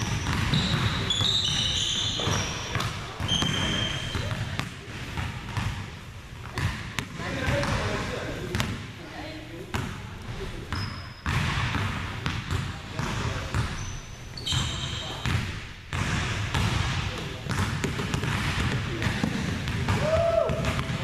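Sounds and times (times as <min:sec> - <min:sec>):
shoe squeak: 0:00.0 - 0:04.6, 0:10.7 - 0:11.3, 0:13.6 - 0:15.4
basketball bouncing on wooden floor: 0:00.0 - 0:05.8, 0:06.4 - 0:07.9, 0:10.7 - 0:21.0.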